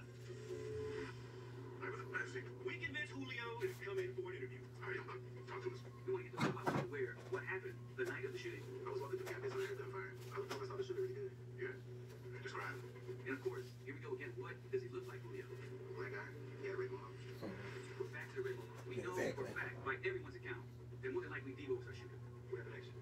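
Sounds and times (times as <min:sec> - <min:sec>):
faint television dialogue: 0:00.0 - 0:23.0.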